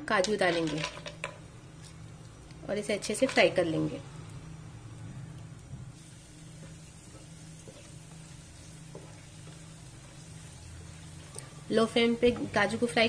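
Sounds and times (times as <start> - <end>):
nuts sizzling in a frying pan: 0.1 - 13.0.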